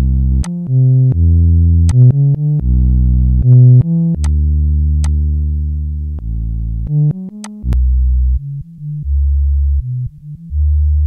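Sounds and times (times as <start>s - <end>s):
deep dull synthesizer bass notes: 0.0s - 11.0s.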